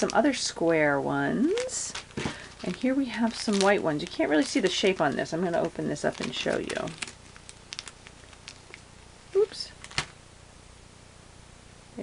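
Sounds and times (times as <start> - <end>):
plastic bag crinkling: 0.0 - 0.6, 1.3 - 10.2.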